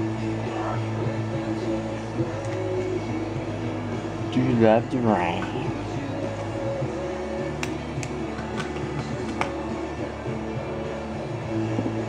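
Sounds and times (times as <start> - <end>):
radio music: 0.0 - 11.9.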